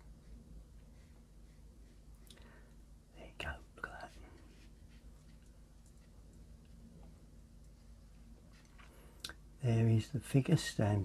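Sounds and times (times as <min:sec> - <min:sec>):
man whispering: 0:03.1 - 0:04.7.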